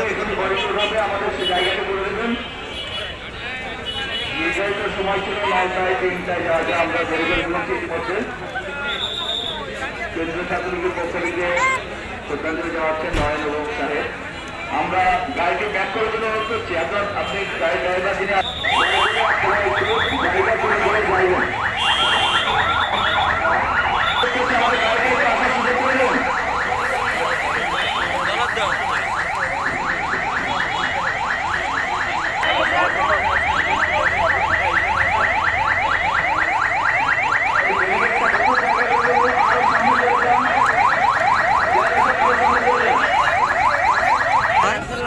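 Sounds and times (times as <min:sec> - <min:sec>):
murmur of large crowd: 0:00.0 - 0:45.0
electronic siren yelping: 0:18.4 - 0:45.0.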